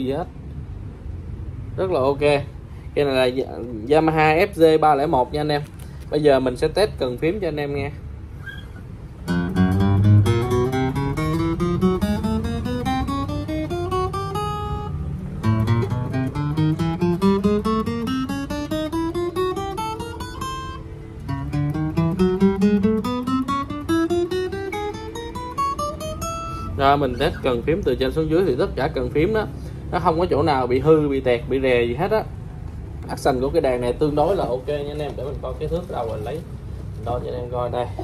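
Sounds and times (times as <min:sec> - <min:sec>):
acoustic guitar plucked notes: 0:09.2 - 0:27.6.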